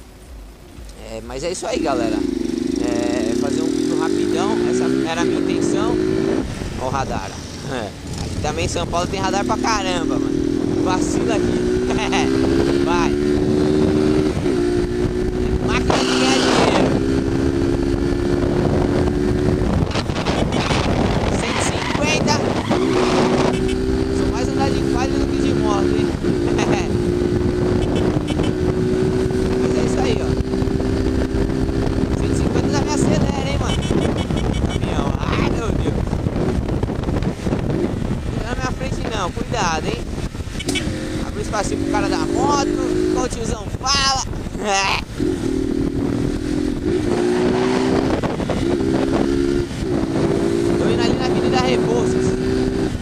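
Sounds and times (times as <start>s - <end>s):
wind rushing on microphone: 0.0s - 53.0s
motorcycle engine running: 0.2s - 53.0s.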